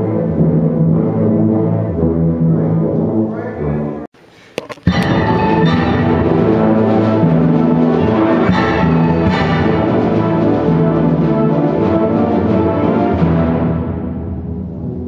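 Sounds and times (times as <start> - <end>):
wind band playing chords: 0.0 - 4.1, 4.9 - 15.0.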